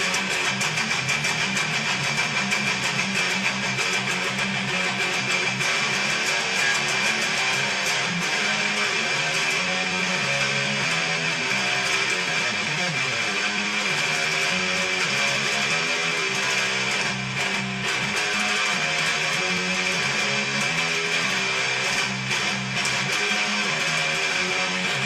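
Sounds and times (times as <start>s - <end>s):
electric guitar riff: 0.0s - 25.0s.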